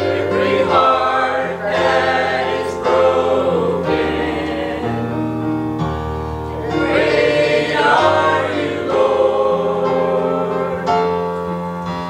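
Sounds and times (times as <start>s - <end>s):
choir singing in harmony: 0.0s - 12.0s.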